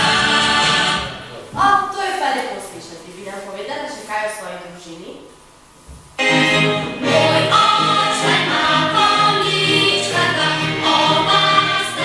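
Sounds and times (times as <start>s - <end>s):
choir singing with music: 0.0s - 1.3s, 6.2s - 12.0s.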